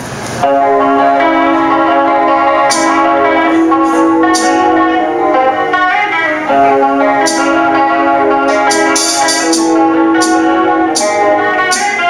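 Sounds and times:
cymbal crash: 0:00.4 - 0:12.0
electric guitar sustained chords: 0:00.4 - 0:12.0.

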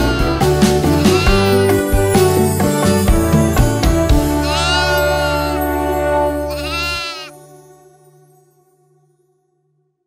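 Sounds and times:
sheep bleating: 0:00.0 - 0:03.3, 0:04.3 - 0:07.4
children's song chord: 0:01.2 - 0:08.1.

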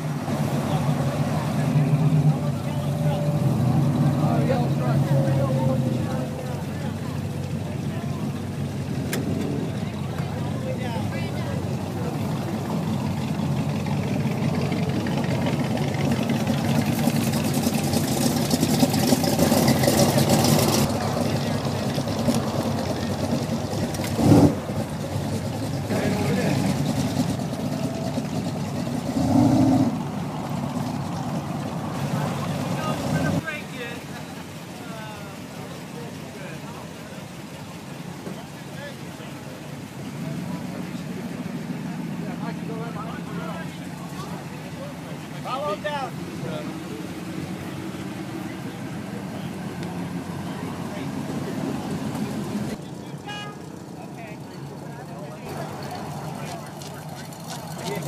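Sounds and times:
car driving past: 0:00.0 - 0:34.2
car engines running: 0:00.0 - 0:58.0
people talking: 0:00.3 - 0:17.9, 0:20.0 - 0:23.4, 0:25.0 - 0:28.5, 0:32.0 - 0:58.0.

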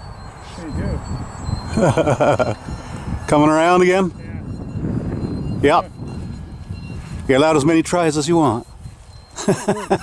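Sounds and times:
wind rumble on microphone: 0:00.0 - 0:10.0
man laughing: 0:01.7 - 0:02.7, 0:09.3 - 0:10.0.

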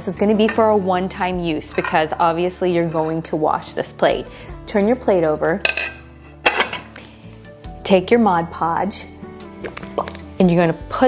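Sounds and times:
soft background music: 0:00.0 - 0:11.0
glass plate clinking on countertop: 0:05.7 - 0:06.8.

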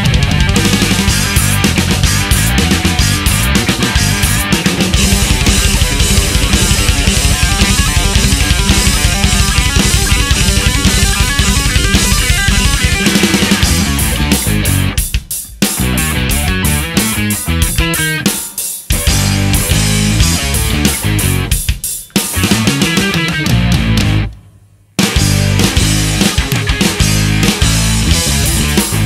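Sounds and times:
jazz-metal band playing: 0:00.0 - 0:24.4, 0:25.0 - 0:29.0.

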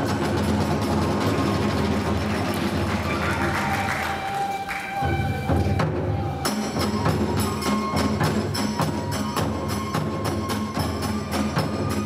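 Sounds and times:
drums: 0:00.0 - 0:12.0
bamboo flute holding tones: 0:03.0 - 0:12.0.

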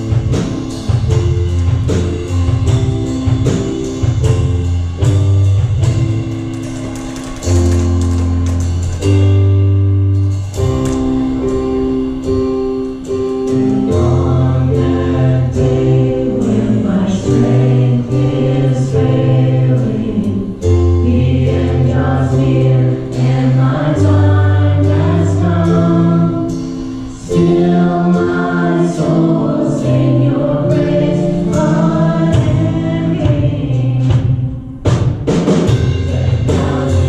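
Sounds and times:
deep bass notes: 0:00.0 - 0:37.0
drums with cymbals: 0:00.0 - 0:37.0
keyboard: 0:00.0 - 0:37.0
women singing: 0:13.9 - 0:26.6, 0:27.2 - 0:34.7, 0:36.1 - 0:37.0.

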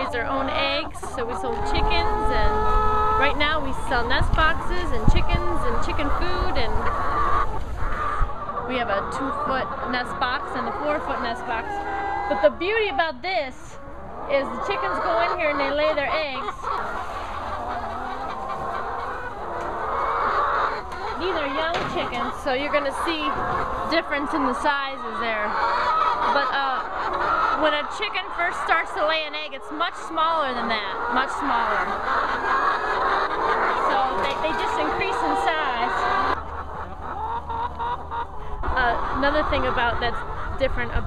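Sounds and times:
hens clucking: 0:00.0 - 0:41.0.

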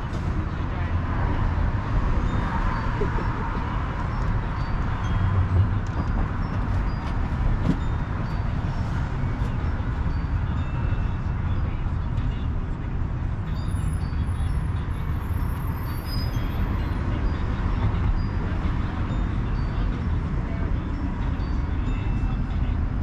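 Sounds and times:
street traffic rumble: 0:00.0 - 0:23.0.

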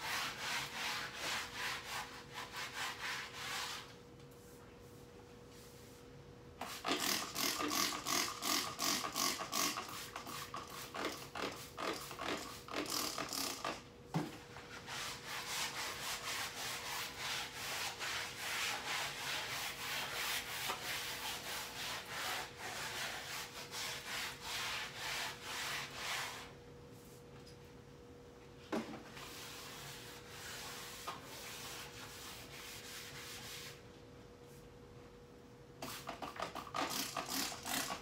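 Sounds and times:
scrubbing a wall by hand: 0:00.0 - 0:06.0, 0:14.3 - 0:27.2, 0:28.9 - 0:33.8.

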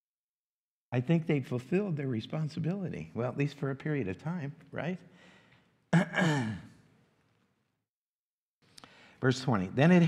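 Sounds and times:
man clearing throat: 0:05.9 - 0:06.8.

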